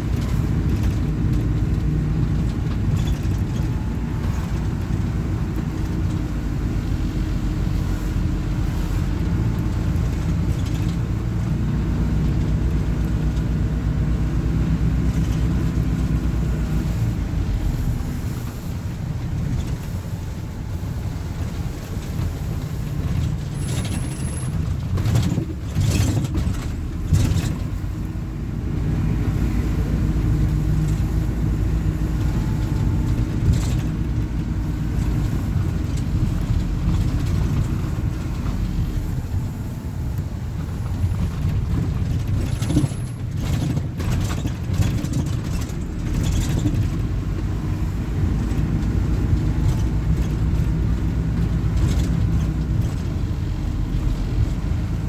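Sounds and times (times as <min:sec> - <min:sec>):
minibus diesel engine droning: 0:00.0 - 0:55.0.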